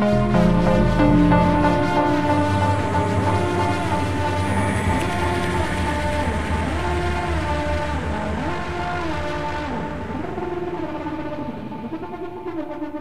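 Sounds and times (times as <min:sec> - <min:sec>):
held synth tone: 0:00.0 - 0:12.4
droning bass: 0:00.0 - 0:12.6
gliding synth lines: 0:00.0 - 0:13.0.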